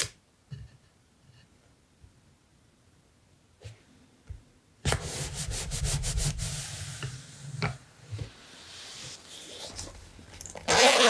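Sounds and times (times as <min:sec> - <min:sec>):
paper scrubbing on page: 0:04.9 - 0:07.4.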